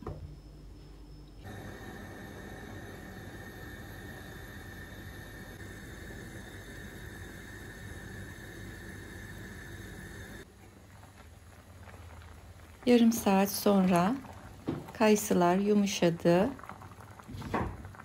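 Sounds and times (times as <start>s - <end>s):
water boiling in a pot: 1.4s - 18.0s.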